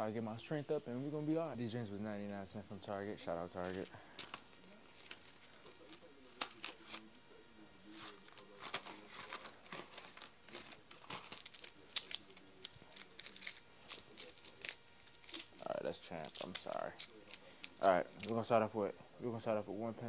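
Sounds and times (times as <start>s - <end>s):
packaging crinkling and tearing: 8.2s - 18.4s.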